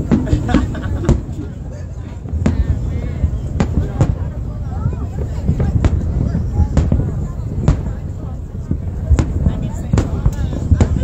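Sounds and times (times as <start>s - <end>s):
fireworks bangs: 0.0s - 11.0s.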